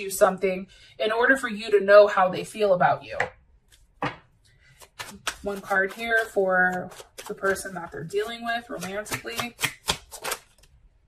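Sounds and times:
tap on a tabletop: 4.0 - 4.3
cards clicking: 9.4 - 10.7.

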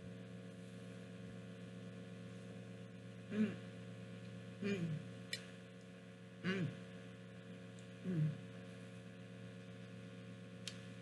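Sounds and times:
low electrical hum: 0.0 - 11.0
woman humming mmm: 3.3 - 3.7, 4.6 - 5.1, 6.4 - 6.8, 8.0 - 8.5.

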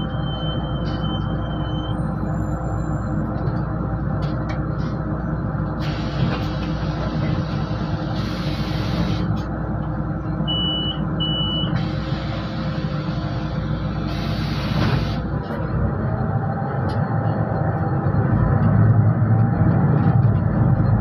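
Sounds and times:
bus engine idling: 0.0 - 21.0.

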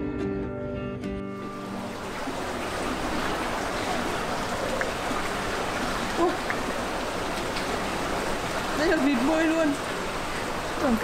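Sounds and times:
fast river rushing: 1.5 - 11.0.

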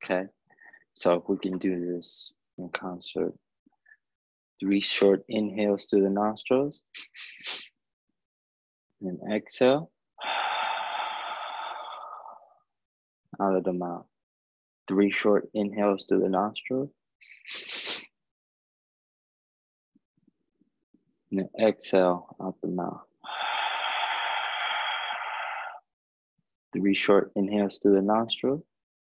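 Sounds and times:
breath out through mouth: 10.2 - 12.5, 23.3 - 25.8.

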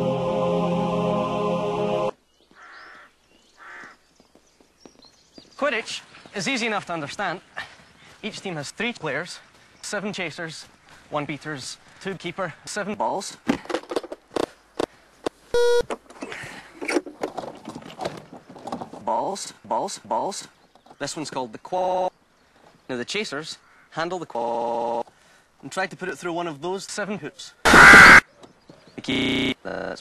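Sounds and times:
bird calling: 2.4 - 6.6, 23.6 - 24.0
loud buzzy electronic beep: 15.6 - 15.8, 27.7 - 28.2, 29.1 - 29.6.

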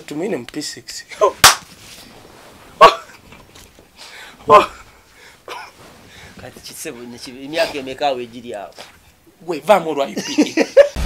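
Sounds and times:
man laughing: 10.1 - 11.0.

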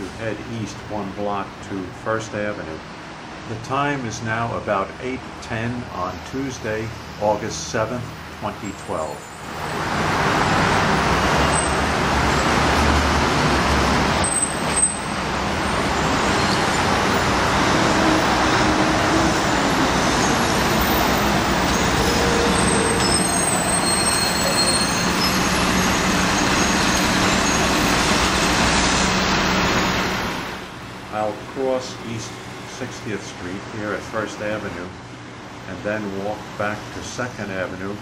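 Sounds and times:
street traffic: 0.0 - 38.0.

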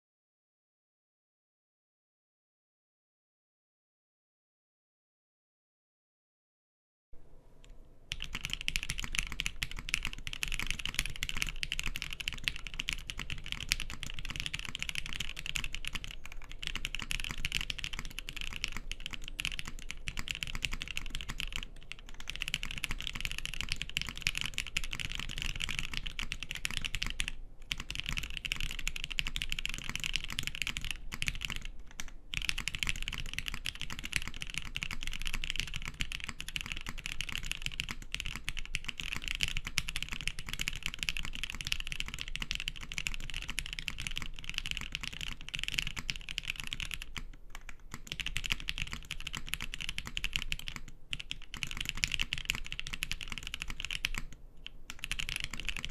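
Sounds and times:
mechanical keyboard typing: 8.1 - 55.9.

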